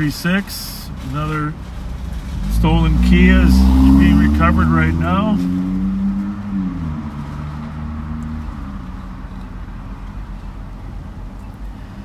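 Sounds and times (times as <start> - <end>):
car engine idling: 0.0 - 5.4.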